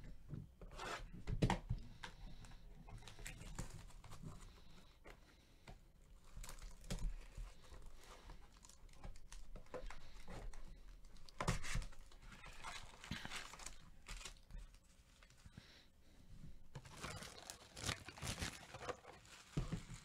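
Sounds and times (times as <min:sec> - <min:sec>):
foil packs rustling: 0:06.2 - 0:15.5, 0:16.8 - 0:20.0
plastic shrink wrap crinkling: 0:06.2 - 0:15.5, 0:16.8 - 0:20.0.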